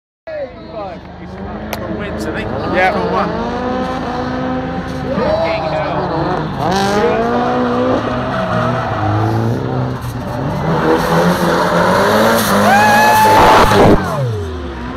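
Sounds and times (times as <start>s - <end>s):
car engines revving hard: 1.0s - 14.9s.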